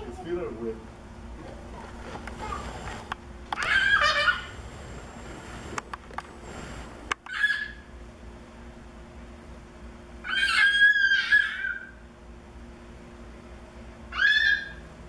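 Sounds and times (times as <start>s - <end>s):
chicken squawking: 3.6s - 4.6s, 7.3s - 7.9s, 10.3s - 12.0s, 14.1s - 14.9s.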